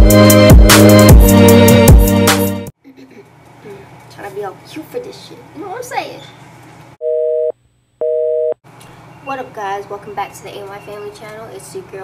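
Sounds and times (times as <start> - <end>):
telephone busy signal beeps: 7.0 - 8.6.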